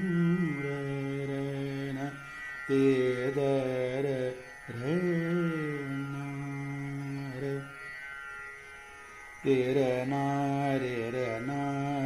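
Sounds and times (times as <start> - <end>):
man singing classical vocals: 0.0 - 7.7, 9.4 - 12.0.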